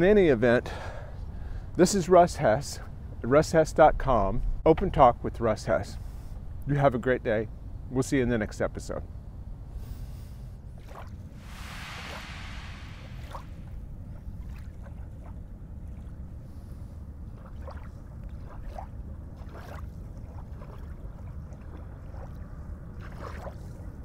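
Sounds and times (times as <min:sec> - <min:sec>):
wind on microphone: 0:11.4 - 0:15.0
water lapping: 0:14.4 - 0:24.0.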